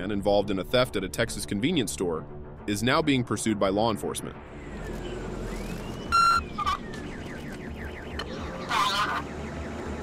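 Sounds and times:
police siren wailing: 0:06.0 - 0:10.0
loud electronic beep: 0:06.1 - 0:06.8.

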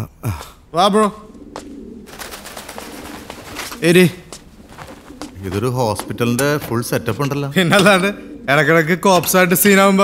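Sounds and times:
background hiss: 0:00.0 - 0:10.0
pigeons cooing: 0:00.3 - 0:10.0.

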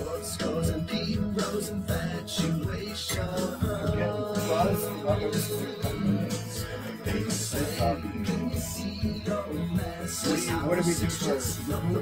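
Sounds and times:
band music over speakers: 0:00.0 - 0:12.0.

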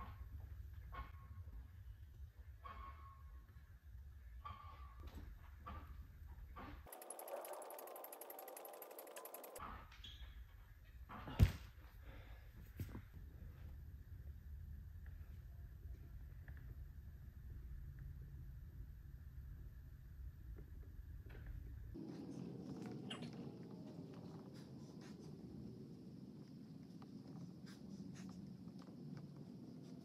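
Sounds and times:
low room hum: 0:10.3 - 0:30.0.

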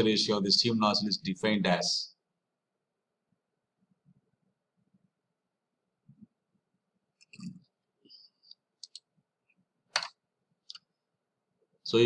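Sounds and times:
voice: 0:00.0 - 0:02.2.

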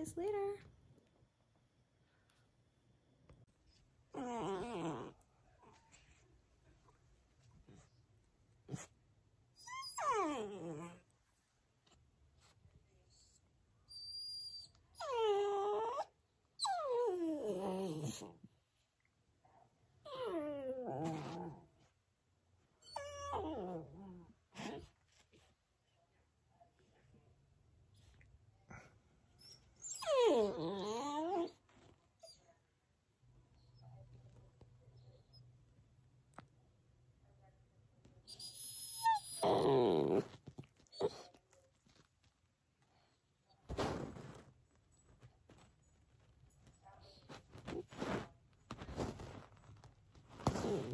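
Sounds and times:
puppy whining: 0:03.6 - 0:06.2, 0:09.5 - 0:11.0, 0:13.2 - 0:18.4, 0:20.0 - 0:21.6, 0:22.8 - 0:24.9, 0:29.3 - 0:32.5, 0:38.2 - 0:41.6
puppy squeaking: 0:38.3 - 0:39.8
soft rustling: 0:40.1 - 0:50.9.

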